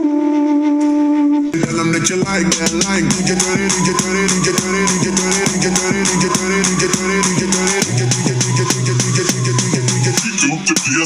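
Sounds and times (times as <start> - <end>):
music through small speaker: 1.6 - 11.0.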